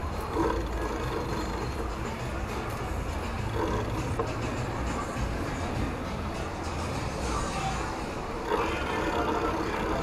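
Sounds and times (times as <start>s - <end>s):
faint music: 0.0s - 10.0s
low rumble of traffic: 0.0s - 10.0s.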